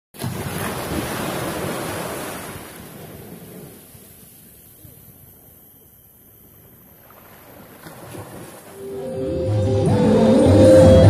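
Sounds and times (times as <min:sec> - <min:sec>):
waves washing over sand: 0:00.2 - 0:04.6.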